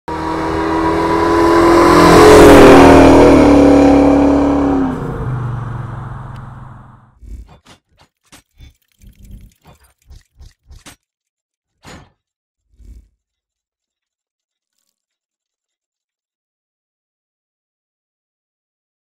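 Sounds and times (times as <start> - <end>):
car driving past: 0.1 - 7.1.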